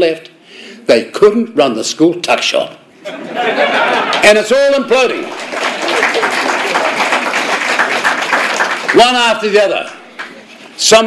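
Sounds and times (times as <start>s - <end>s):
laughter: 3.0s - 4.2s, 5.8s - 6.8s
audience applauding: 5.0s - 10.5s.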